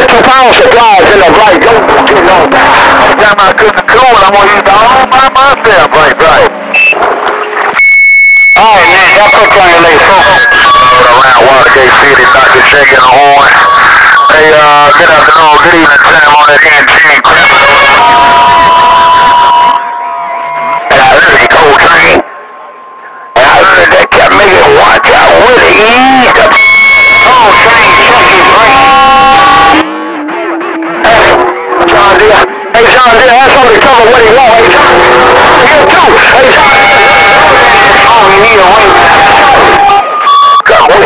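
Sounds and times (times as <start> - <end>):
garbled radio voices: 0.0 - 41.0
radio static: 0.0 - 41.0.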